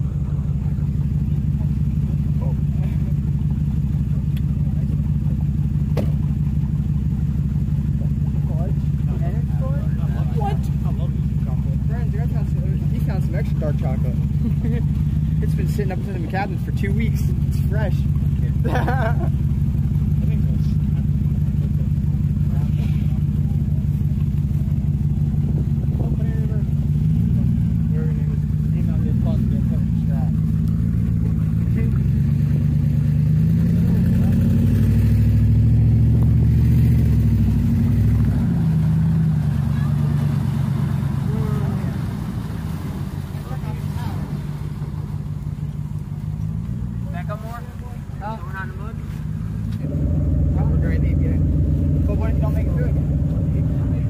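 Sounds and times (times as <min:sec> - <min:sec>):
steady engine drone: 0:00.0 - 0:54.0
truck engines revving: 0:00.0 - 0:54.0.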